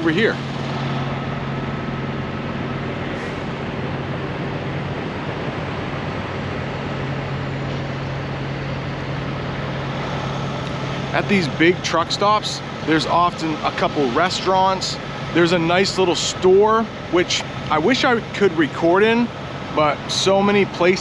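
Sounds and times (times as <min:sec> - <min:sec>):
diesel trucks idling: 0:00.0 - 0:21.0.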